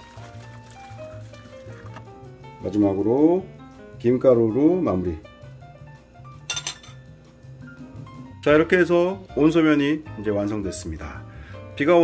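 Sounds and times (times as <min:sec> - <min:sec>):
soft background music: 0:00.0 - 0:12.0
metal tongs clinking: 0:06.5 - 0:07.0.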